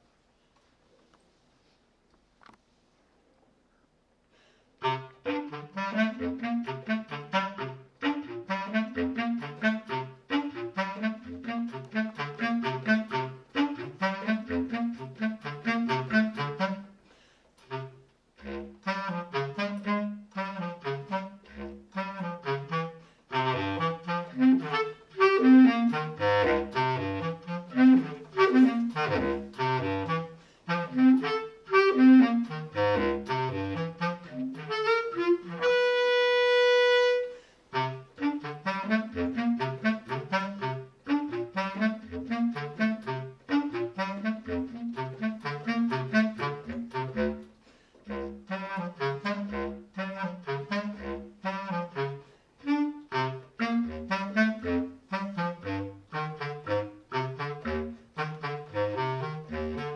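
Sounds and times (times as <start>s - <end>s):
bass clarinet solo: 4.8s - 59.9s.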